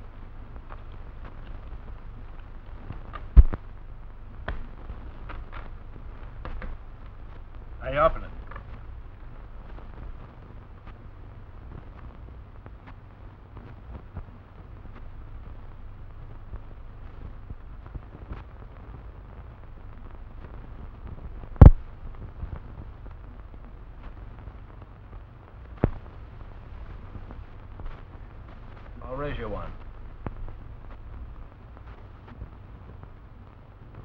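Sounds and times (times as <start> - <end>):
faint crackle: 0.0 - 34.0
low hum and hiss: 0.0 - 34.0
sharp pops: 0.5 - 3.8, 4.4 - 8.9, 20.4 - 23.2, 25.7 - 31.2.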